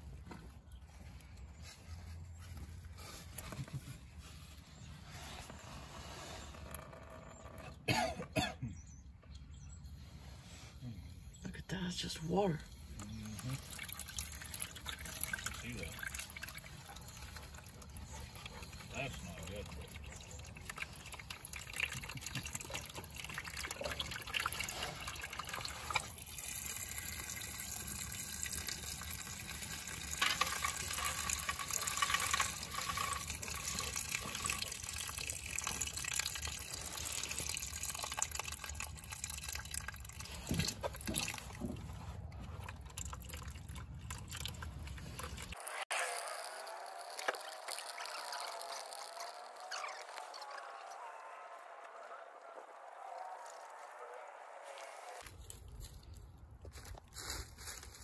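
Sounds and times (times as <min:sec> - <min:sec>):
water pouring into plastic pan: 0:12.8 - 0:41.9, 0:42.5 - 0:50.5.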